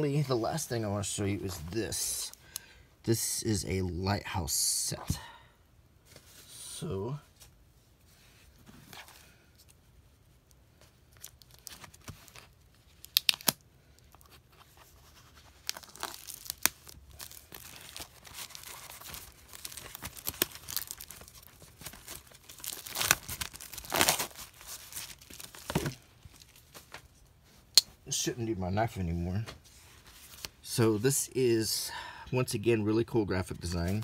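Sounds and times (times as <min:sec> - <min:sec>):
plastic shrink wrap crinkling: 0:10.4 - 0:27.2.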